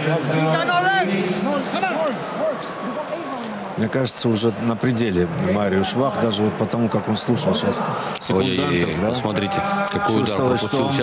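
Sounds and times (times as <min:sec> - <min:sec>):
man talking: 0:03.8 - 0:11.0.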